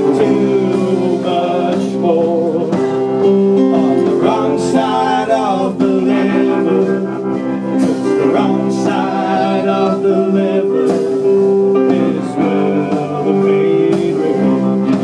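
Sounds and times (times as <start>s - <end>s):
electric guitar lead line: 0.0s - 15.0s
rock band playing: 0.0s - 15.0s.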